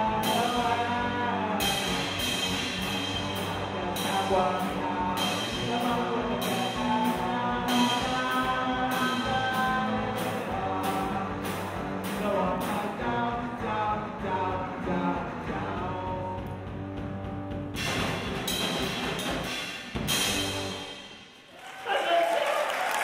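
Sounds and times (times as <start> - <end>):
drum kit with cymbals: 0.0 - 21.4.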